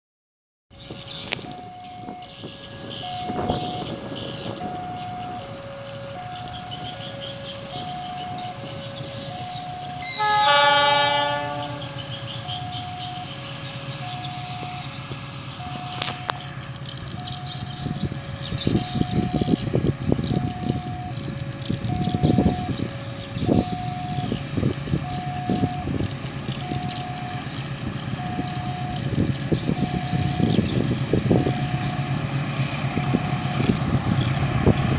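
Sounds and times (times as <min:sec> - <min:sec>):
two-tone warning signal: 0:00.9 - 0:13.4, 0:14.0 - 0:14.9, 0:15.6 - 0:16.4, 0:20.3 - 0:21.2, 0:21.8 - 0:24.4, 0:25.0 - 0:26.0, 0:26.6 - 0:27.5, 0:28.2 - 0:29.1, 0:29.7 - 0:30.7, 0:31.3 - 0:32.0
locomotive horn: 0:01.6 - 0:13.3.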